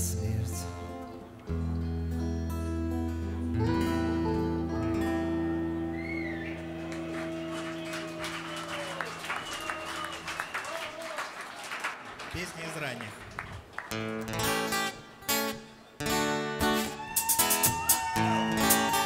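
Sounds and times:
electro-acoustic guitar: 0.0 - 7.6, 13.9 - 19.0
bass guitar: 0.0 - 8.5
audience whistling: 5.8 - 12.0, 16.7 - 19.0
audience applause: 6.0 - 14.2, 17.0 - 19.0.

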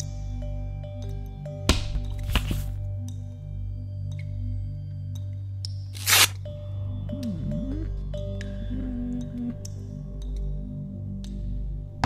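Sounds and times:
film soundtrack music: 0.0 - 12.0
low steady drone: 6.4 - 12.0.

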